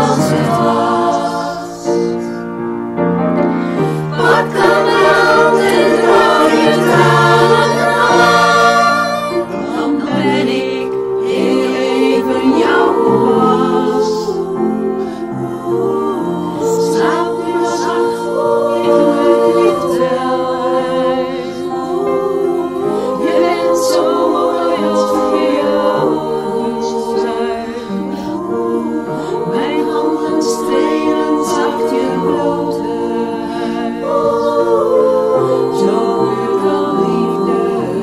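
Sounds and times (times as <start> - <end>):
women's choir singing in harmony: 0.0 - 38.0.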